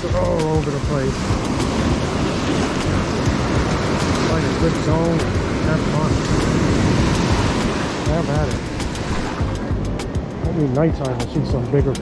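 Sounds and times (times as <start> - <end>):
waves breaking on beach: 0.0 - 12.0.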